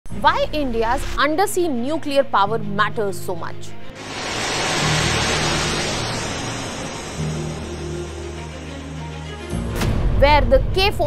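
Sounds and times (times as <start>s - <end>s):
missile launch roar: 4.0s - 10.2s.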